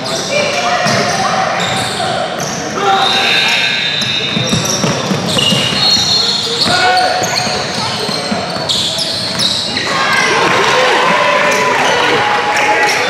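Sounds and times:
crowd chattering and calling out: 0.0s - 13.0s
sneakers squeaking: 0.0s - 13.0s.

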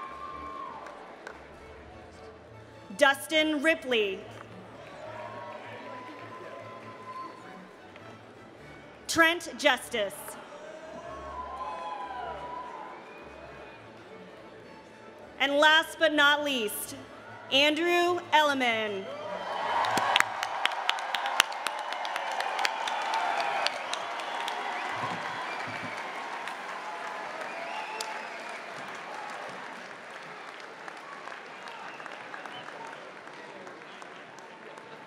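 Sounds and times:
audience applause: 0.0s - 1.4s, 4.6s - 7.4s, 19.1s - 35.0s.

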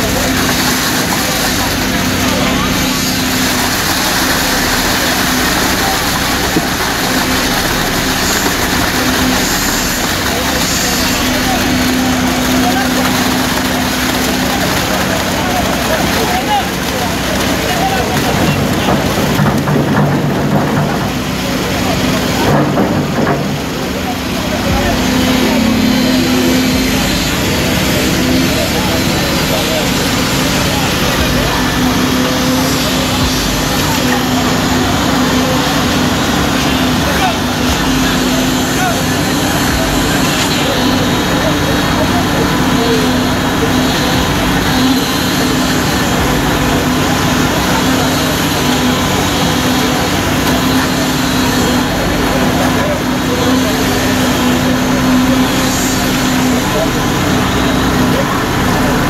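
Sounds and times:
chatter of many voices: 0.0s - 59.0s
diesel engine droning: 0.0s - 59.0s.

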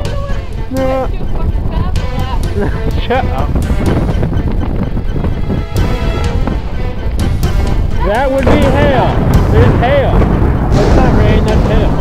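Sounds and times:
music with held tones and steady beat: 0.0s - 12.0s.

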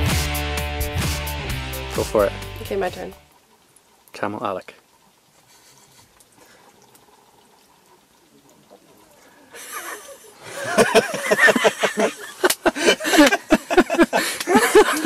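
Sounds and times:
people laughing and exclaiming: 9.5s - 15.0s.

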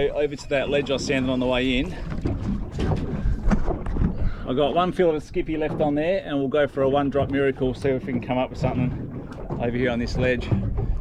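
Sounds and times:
wind buffeting microphone: 0.0s - 11.0s
irregular knocks and rustles: 1.8s - 4.4s, 5.4s - 6.4s, 7.0s - 11.0s.

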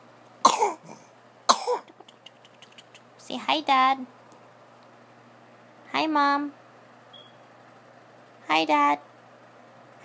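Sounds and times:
baby coughing sound: 0.4s - 2.0s.

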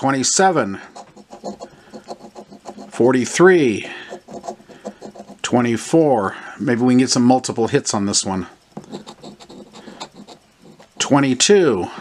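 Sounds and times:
coin scraping scratch card: 0.8s - 5.5s, 8.8s - 11.4s.

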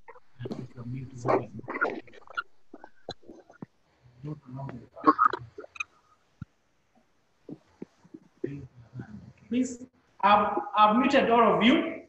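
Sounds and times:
person talking over video call: 0.4s - 2.1s, 4.2s - 5.8s, 8.4s - 12.0s.

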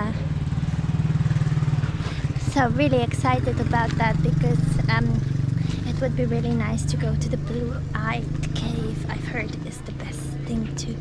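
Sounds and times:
motor engine idling: 0.0s - 11.0s.

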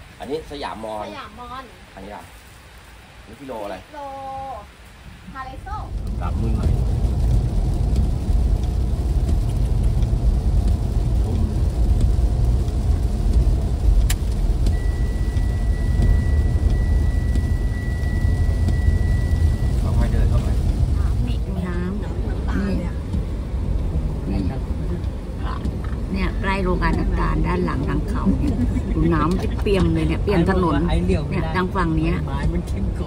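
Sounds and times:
car tyres and engine rumble: 0.0s - 33.0s
rain on car: 0.0s - 33.0s
windscreen wipers: 5.2s - 33.0s
sharp click: 14.0s - 14.4s
steady high beep: 14.7s - 20.5s.

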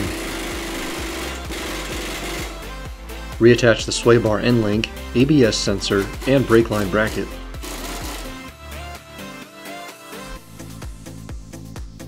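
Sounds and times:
impact wrench hammering: 0.0s - 2.7s, 5.9s - 8.4s
background music: 0.0s - 12.0s.

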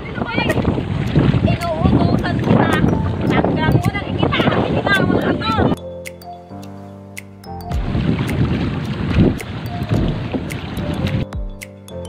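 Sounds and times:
water rushing past boat: 0.0s - 5.8s, 7.6s - 11.4s
wind buffeting microphone: 0.0s - 5.8s, 7.8s - 11.4s
music with a beat: 0.4s - 12.0s.

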